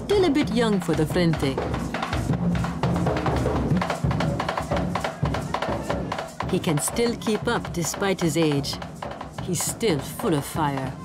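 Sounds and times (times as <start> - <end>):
fast hand drumming: 0.0 - 11.0.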